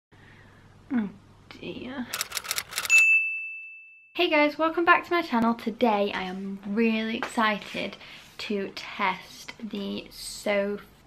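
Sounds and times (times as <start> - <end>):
bell ding: 2.9 - 4.0.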